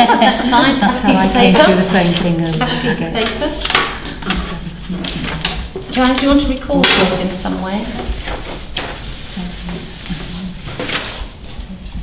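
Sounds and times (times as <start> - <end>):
paper and cards rustling: 0.6 - 12.0.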